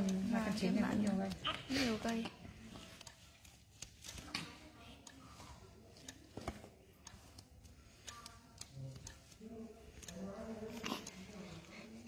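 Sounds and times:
newborn baby whimpering: 0:01.4 - 0:02.0.

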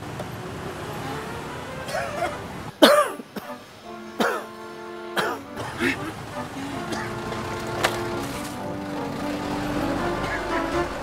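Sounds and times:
background music: 0:00.4 - 0:11.0
elderly man coughing hoarsely: 0:01.9 - 0:03.6, 0:04.2 - 0:04.5, 0:05.2 - 0:06.2, 0:06.8 - 0:07.2.

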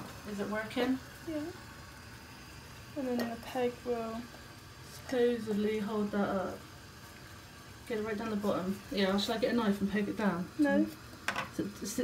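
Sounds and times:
water boiling in pan: 0:00.0 - 0:12.0.

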